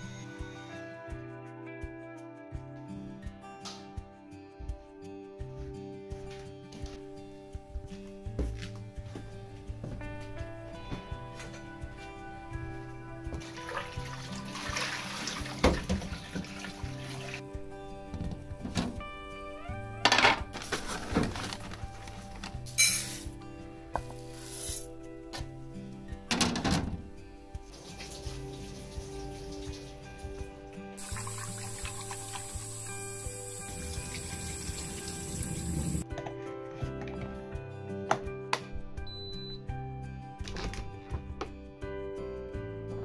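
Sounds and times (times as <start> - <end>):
background music: 0.0 - 43.0
rice and water swishing: 13.4 - 15.6
tap water running: 13.4 - 17.4, 27.7 - 36.0
water splashes: 13.4 - 17.4.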